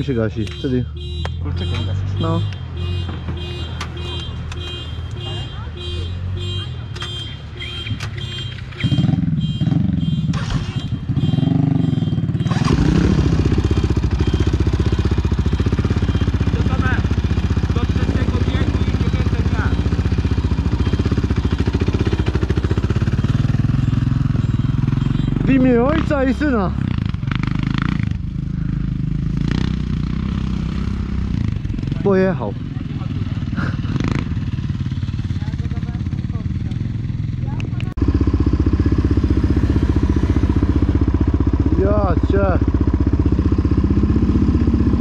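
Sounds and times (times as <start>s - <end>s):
quad engine revving: 8.8s - 45.0s
loud engine running close: 8.9s - 45.0s.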